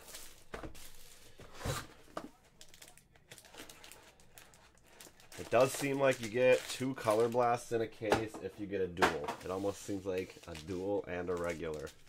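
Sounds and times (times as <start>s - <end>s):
plastic wrap crinkling: 2.5s - 7.9s, 9.4s - 12.0s.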